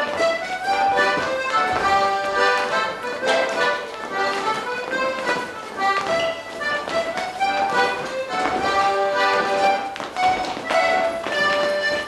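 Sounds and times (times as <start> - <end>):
accordion playing dance tune: 0.0 - 12.0.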